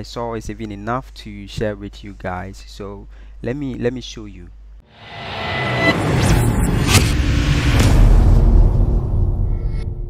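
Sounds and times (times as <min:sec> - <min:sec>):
whooshing noise: 0:04.9 - 0:09.8
sharp hit: 0:04.9 - 0:10.0
low rumble: 0:05.0 - 0:10.0.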